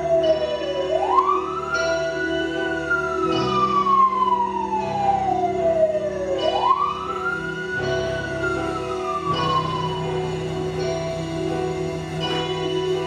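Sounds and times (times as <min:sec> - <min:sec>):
low musical drone: 0:00.0 - 0:13.0.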